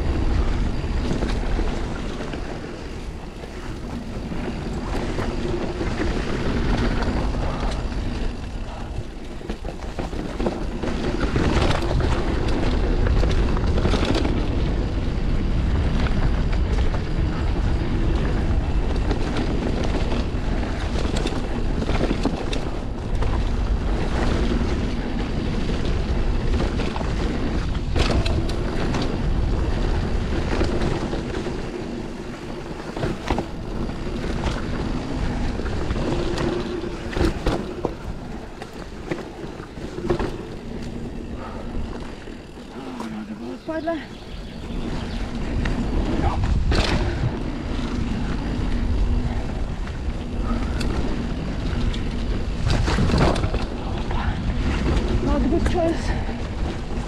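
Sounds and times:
bike rattling clicks and knocks: 0.0 - 57.0
bike tyres rolling on dirt: 0.0 - 57.0
wind on microphone: 0.0 - 57.0.

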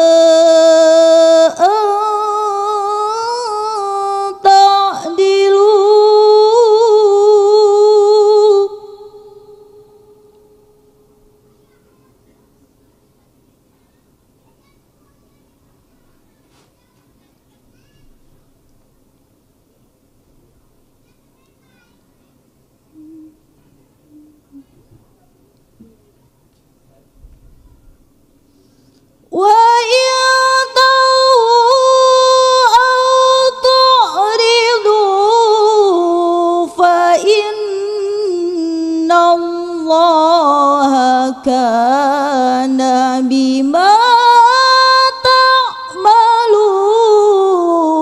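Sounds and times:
person chanting: 0.0 - 10.7, 29.4 - 48.0
person reciting a long melodic note: 0.0 - 11.8, 22.9 - 24.7, 29.4 - 48.0.

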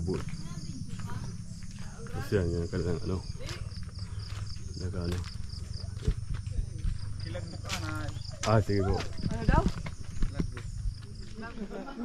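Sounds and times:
footsteps on gravel: 0.0 - 2.5, 3.2 - 11.8
faint voices talking: 0.0 - 12.0.

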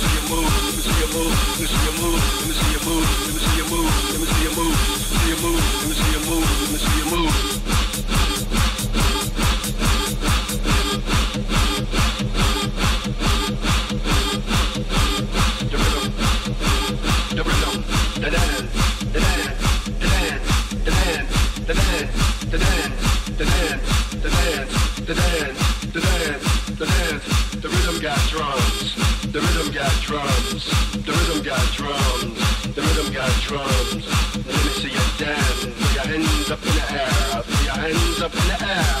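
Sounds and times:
techno music: 0.0 - 39.0.

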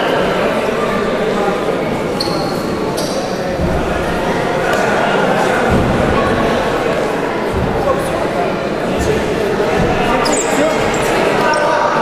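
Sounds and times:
voices talking and calling out: 0.0 - 12.0
dull thud: 3.5 - 10.9.

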